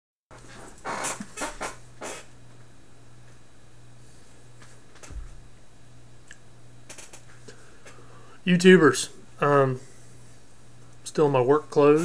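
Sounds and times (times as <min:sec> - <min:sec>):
low steady hum: 0:00.3 - 0:12.0.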